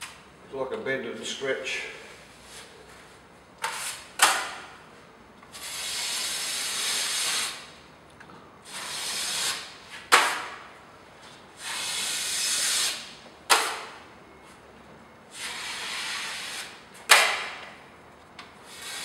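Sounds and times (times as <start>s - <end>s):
drywall blade scraping: 2.1s - 4.6s, 5.5s - 7.7s, 8.6s - 10.6s, 11.6s - 14.0s, 15.3s - 17.6s, 18.6s - 19.0s.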